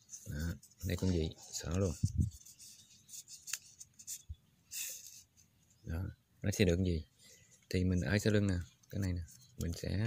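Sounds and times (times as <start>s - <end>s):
leaf strips rustling and scraping: 0.0s - 5.4s.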